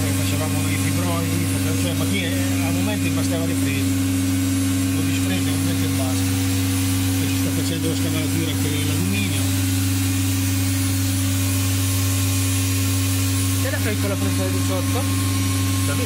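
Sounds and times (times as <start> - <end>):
machining centre humming: 0.0 - 16.0.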